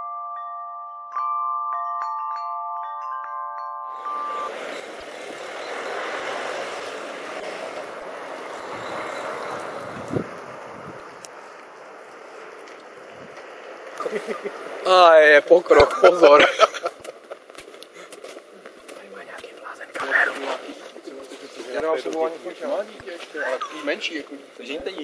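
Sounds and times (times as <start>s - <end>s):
chiming glockenspiel-like music: 0.0s - 4.7s
outdoor street noise: 0.0s - 25.0s.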